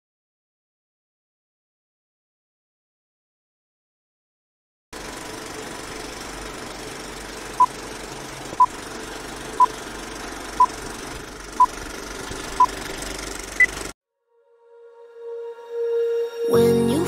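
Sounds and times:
film projector rattle and hiss: 5.0 - 13.9.

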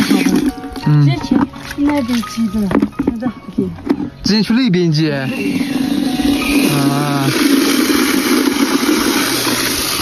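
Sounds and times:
water running into plastic bucket: 0.0 - 4.4, 5.0 - 10.0.

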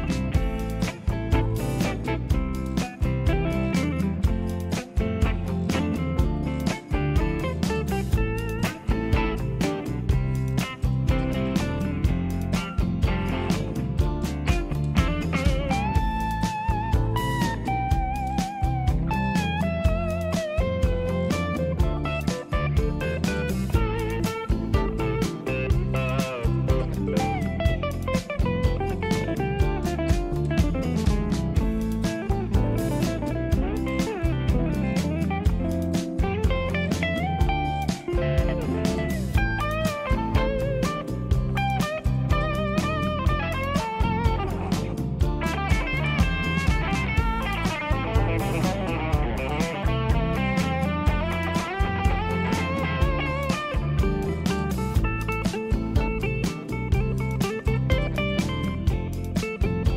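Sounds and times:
bass: 0.0 - 59.9
drum beat: 0.0 - 59.9
electric guitar lead with string bends: 0.0 - 59.9.

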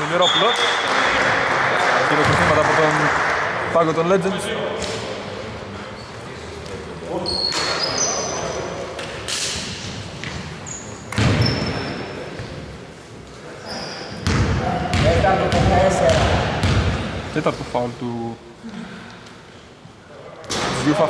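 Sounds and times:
sneaker squeaks on hardwood floor: 7.2 - 8.6, 9.6 - 12.6, 13.6 - 15.1
basketball bouncing: 11.1 - 11.6, 14.2 - 17.1.

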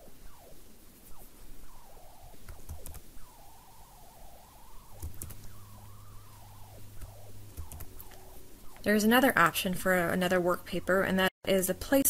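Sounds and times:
faint wavering whine: 0.0 - 12.0
low hum: 0.0 - 12.0.

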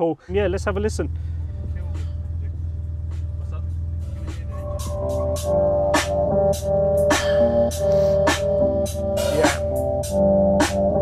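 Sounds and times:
music with drum beat and heavy bass: 0.4 - 11.0.

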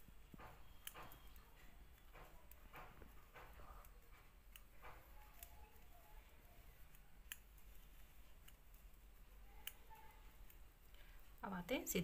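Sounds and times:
knitting needles clicking: 0.1 - 12.0.

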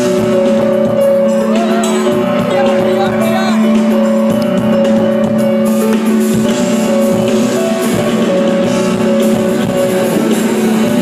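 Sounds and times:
drum kit: 0.0 - 11.0
rock band playing live: 0.0 - 11.0.

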